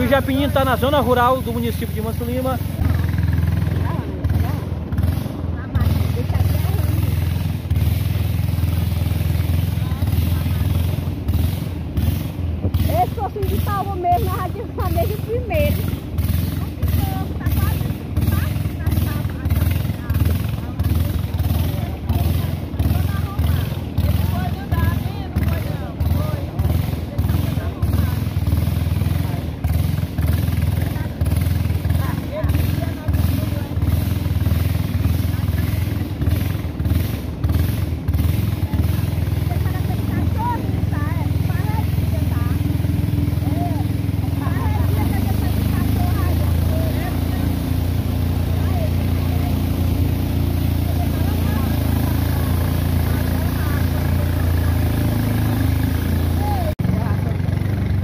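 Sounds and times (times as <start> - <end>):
boat motor drone: 0.0 - 58.0.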